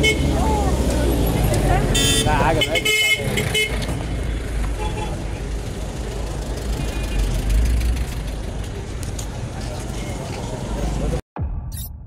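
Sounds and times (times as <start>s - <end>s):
traffic engines rumbling: 0.0s - 11.2s
car horn toot: 2.0s - 3.8s.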